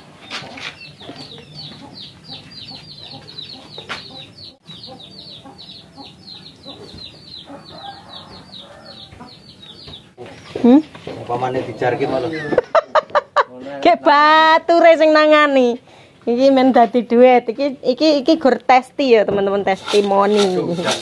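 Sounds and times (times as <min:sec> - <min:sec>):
chicks peeping: 0:00.2 - 0:12.5.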